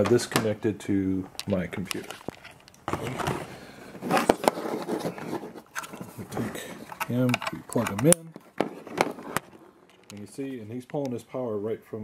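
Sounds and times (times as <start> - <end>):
cable scraping on tabletop: 2.0 - 10.2.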